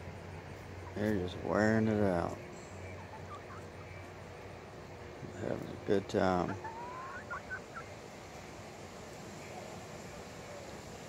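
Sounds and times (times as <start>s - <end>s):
low background hum: 0.0s - 11.0s
hens chirping: 0.6s - 4.6s, 5.4s - 8.0s.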